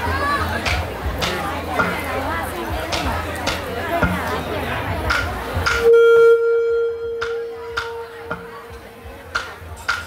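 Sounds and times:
murmur of voices: 0.0s - 10.0s
wind instrument long held note: 5.8s - 8.4s.

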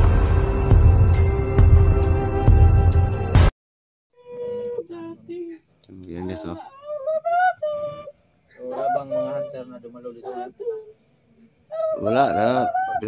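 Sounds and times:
crickets chirring: 4.2s - 13.0s
quiet talking: 4.2s - 13.0s.

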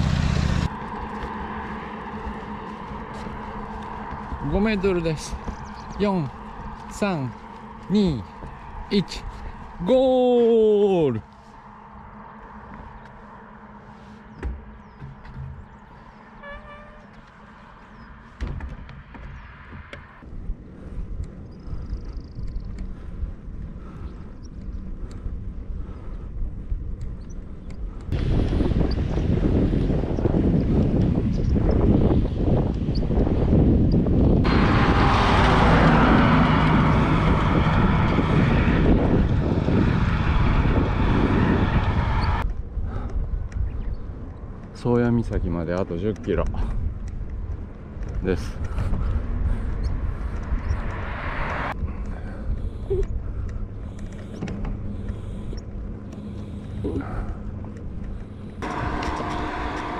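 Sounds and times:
wind rushing over microphone: 0.0s - 16.3s, 17.0s - 59.9s
low hum: 0.0s - 44.8s, 45.9s - 59.9s.

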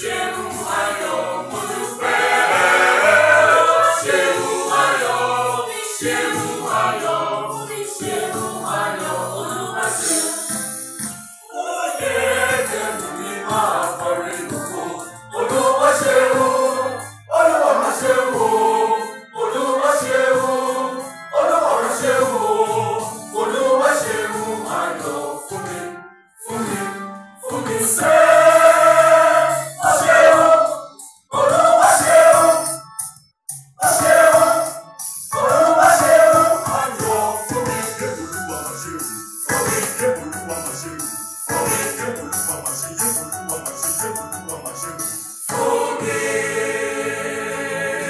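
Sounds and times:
small mixed choir singing: 0.0s - 10.8s, 11.4s - 32.9s, 33.8s - 40.8s, 41.5s - 42.3s, 45.4s - 48.0s.

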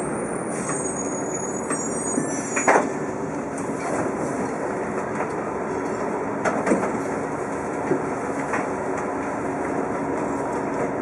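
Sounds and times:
bus engine and drivetrain hum: 0.0s - 11.0s
road noise: 0.0s - 11.0s.

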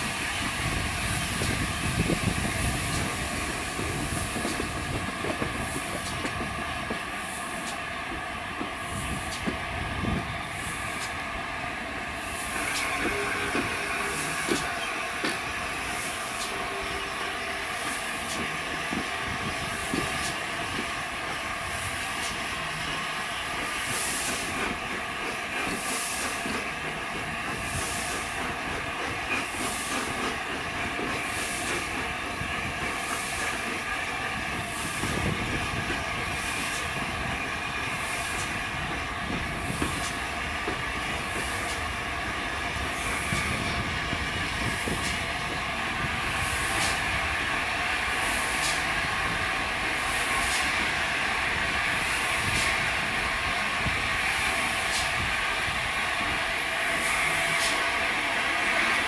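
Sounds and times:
steam locomotive hissing: 0.0s - 59.0s.

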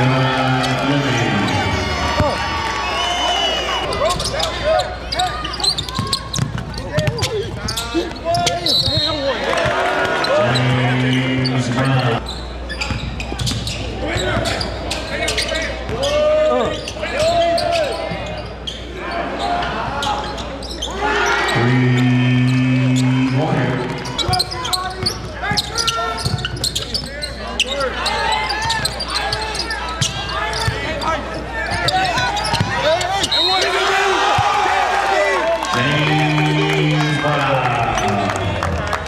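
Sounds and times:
voices of players and crowd: 0.0s - 39.0s.

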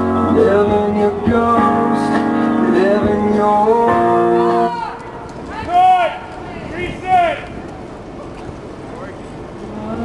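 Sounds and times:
recorded song: 0.0s - 5.4s.

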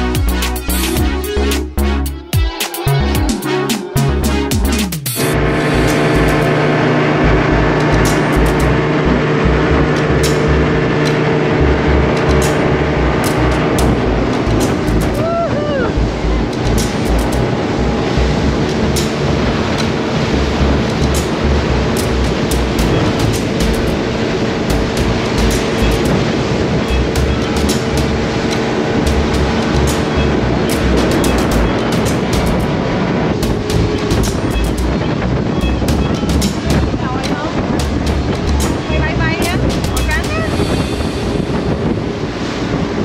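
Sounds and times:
boat engine drone: 0.0s - 43.0s
water rushing off hull: 0.0s - 43.0s
wind buffeting microphone: 5.4s - 43.0s
person crying out: 15.2s - 16.0s.

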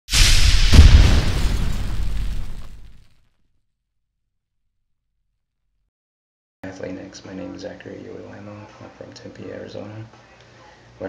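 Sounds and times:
cinematic boom with rumble: 0.1s - 3.1s.

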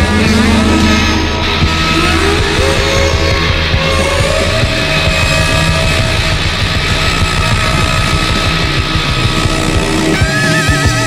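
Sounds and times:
distorted rock music from vinyl: 0.0s - 11.0s.

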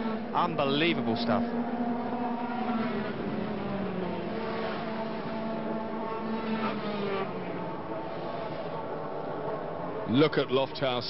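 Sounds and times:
racing motorcycles revving: 0.0s - 11.0s.

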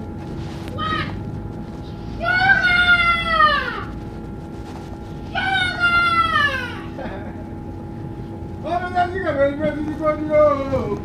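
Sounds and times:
moving bus hum and rumble: 0.0s - 9.0s
high-pitched wailing cries: 0.8s - 1.2s, 2.2s - 3.9s, 5.3s - 7.1s.

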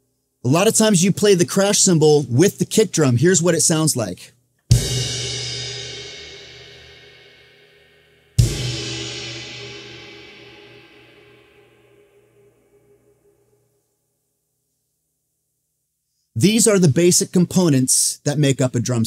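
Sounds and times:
crash cymbal and kick drum: 4.7s - 12.6s.

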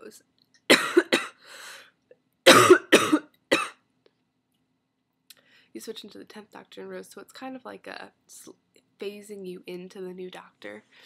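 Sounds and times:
woman coughing: 0.7s - 1.4s, 2.5s - 3.8s.

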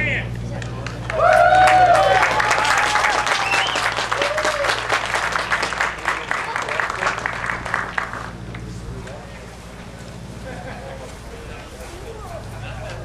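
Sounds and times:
voices calling out: 0.0s - 13.0s
people applauding: 0.6s - 8.7s.

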